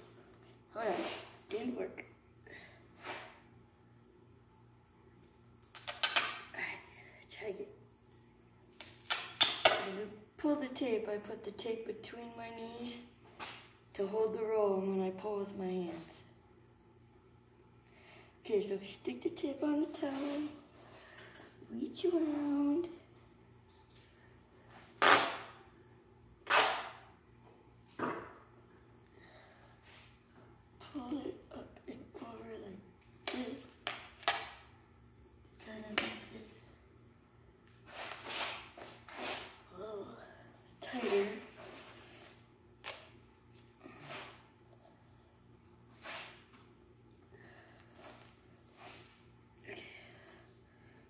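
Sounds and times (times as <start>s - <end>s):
duct tape ripping off roll: 5.7s - 6.4s, 25.0s - 25.5s, 26.4s - 27.0s, 33.8s - 34.6s.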